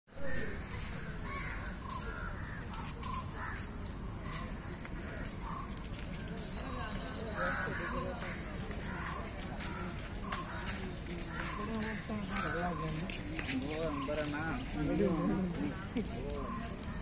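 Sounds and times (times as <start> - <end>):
crows cawing: 0.1 - 5.8, 7.3 - 13.1.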